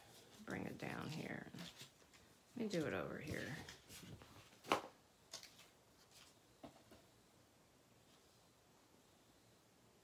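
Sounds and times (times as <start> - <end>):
paper rustling: 3.2 - 7.0.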